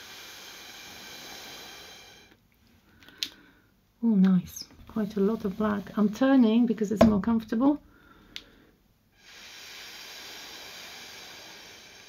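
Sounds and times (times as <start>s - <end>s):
breath blown through straw: 0.0s - 2.4s, 9.2s - 12.0s.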